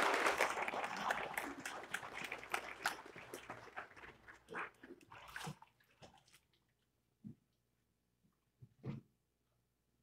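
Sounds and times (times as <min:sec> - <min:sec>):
water sloshing and splashing: 0:00.8 - 0:06.8.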